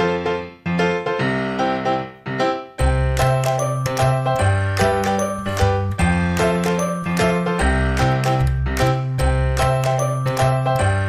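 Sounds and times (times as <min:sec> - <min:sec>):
cheerful bell-like tune with beat: 0:02.8 - 0:11.0.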